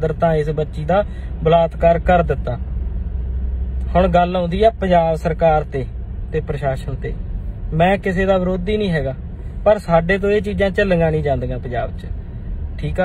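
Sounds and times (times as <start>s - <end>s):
man speaking: 3.9s - 12.1s.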